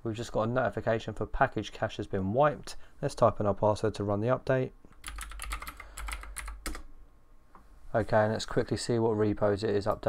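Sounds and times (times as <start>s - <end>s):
computer keyboard typing: 4.9s - 6.9s.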